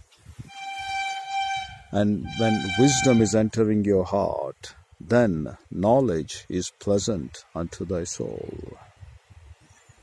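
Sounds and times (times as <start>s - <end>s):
steady horn blast: 0.4s - 3.5s
person speaking: 1.7s - 3.6s.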